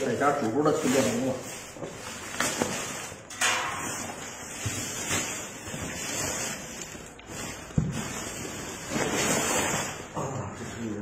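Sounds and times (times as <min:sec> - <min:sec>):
plastic sack rustling: 0:00.0 - 0:11.0.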